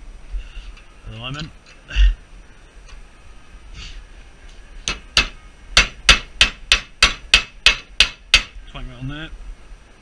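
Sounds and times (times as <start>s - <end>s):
hammer blows on metal: 4.8s - 8.6s.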